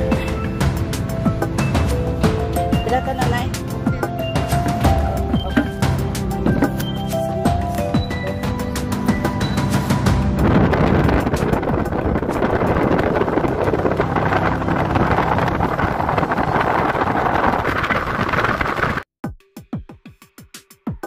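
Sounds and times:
music: 0.0 - 17.2, 19.2 - 21.0
wind and road noise: 0.0 - 19.1.

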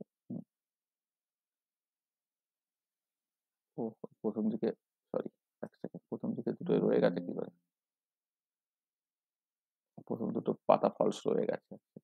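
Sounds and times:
person speaking: 5.8 - 7.5.

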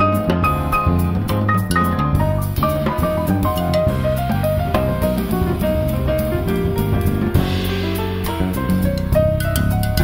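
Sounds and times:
drum kit with cymbals: 0.0 - 10.0
electric bass guitar: 0.0 - 10.0
grand piano: 0.0 - 10.0.

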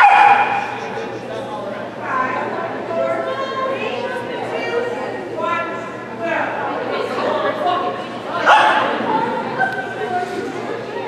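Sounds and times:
dog barking: 0.0 - 0.8.

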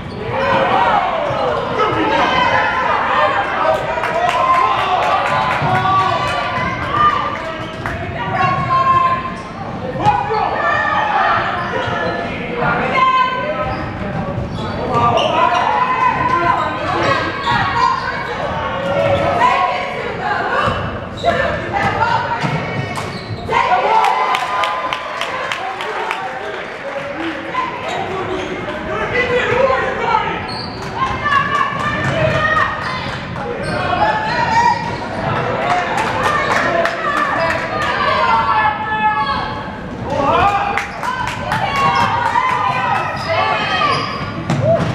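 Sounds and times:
voices and shouts echoing: 0.0 - 44.9.

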